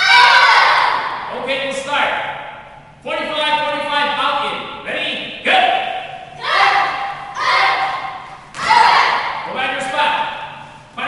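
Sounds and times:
children shouting: 0:00.0 - 0:01.2, 0:06.4 - 0:09.5.

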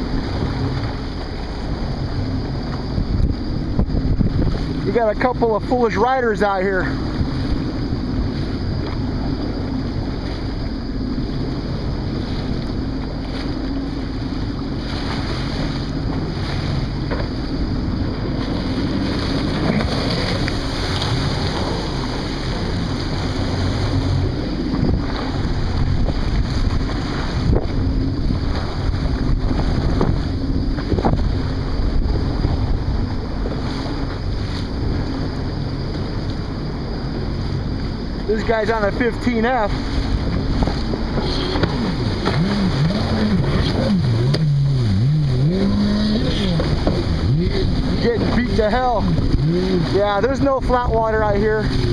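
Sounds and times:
jet ski engine running: 0:00.0 - 0:51.9
water splashing: 0:00.0 - 0:51.9
wind buffeting microphone: 0:00.0 - 0:51.9.

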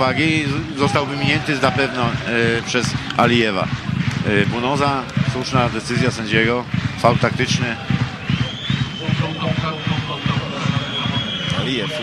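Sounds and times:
stadium crowd noise: 0:00.0 - 0:12.0
long high whistle: 0:08.2 - 0:12.0.

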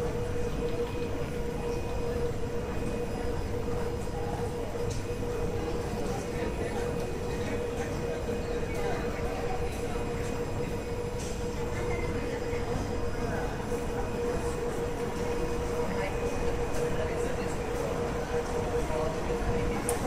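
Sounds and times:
constant mid-pitched hum: 0:00.0 - 0:20.0.

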